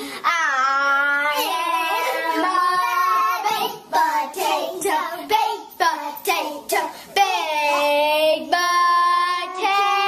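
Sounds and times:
children singing: 0:00.3 - 0:10.0.

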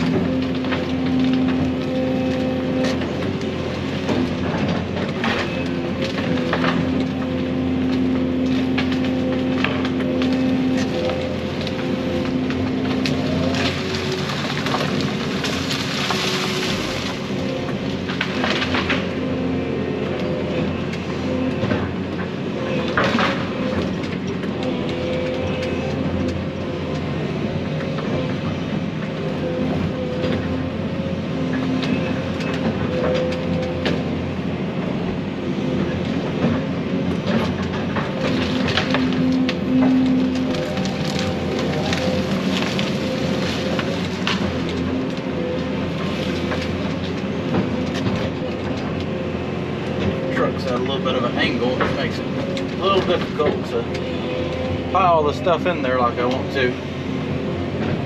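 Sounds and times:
branches cracking and crunching: 0:00.0 - 0:58.0
excavator engine and hydraulics: 0:00.0 - 0:58.0.

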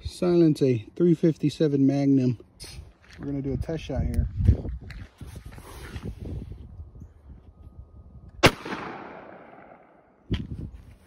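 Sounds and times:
revolver gunshot with echo: 0:08.4 - 0:10.0.

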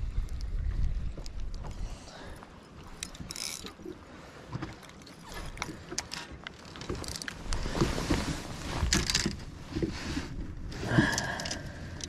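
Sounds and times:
clatter of rods and tackle: 0:02.4 - 0:12.0.

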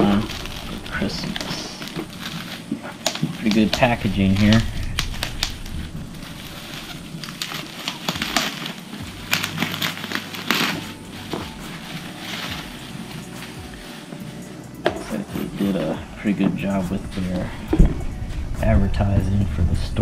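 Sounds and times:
bubble wrap crinkling: 0:00.0 - 0:20.0.

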